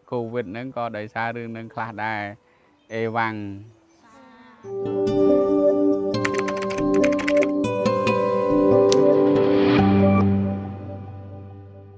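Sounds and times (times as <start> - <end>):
music with long held notes: 4.6 - 11.9
keyboard typing: 6.2 - 7.7.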